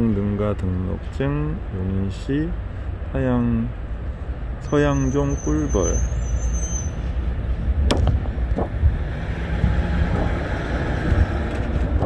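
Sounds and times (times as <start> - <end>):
low outdoor rumble: 0.0 - 12.0
wind buffeting microphone: 7.4 - 12.0.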